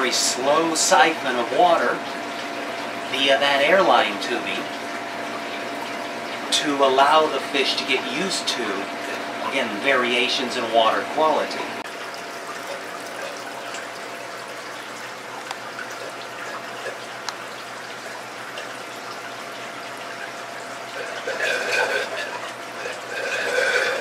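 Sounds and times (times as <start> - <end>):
water trickling into bucket: 0.0 - 24.0.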